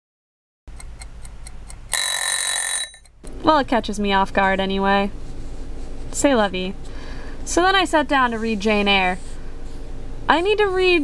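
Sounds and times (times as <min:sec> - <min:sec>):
kitchen timer ticking: 0:00.7 - 0:03.2
kitchen timer bell ringing: 0:01.9 - 0:03.1.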